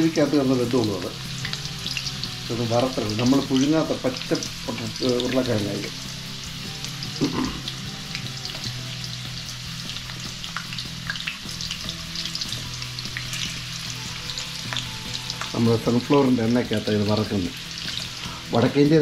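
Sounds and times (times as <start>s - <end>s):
oil crackling and popping: 0.0s - 18.8s
potatoes sizzling in oil: 0.0s - 19.0s.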